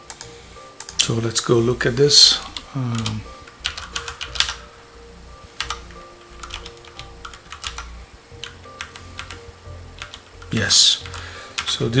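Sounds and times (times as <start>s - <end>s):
keyboard typing: 0.0s - 1.2s, 2.4s - 4.7s, 5.6s - 11.8s
low steady hum: 0.0s - 12.0s.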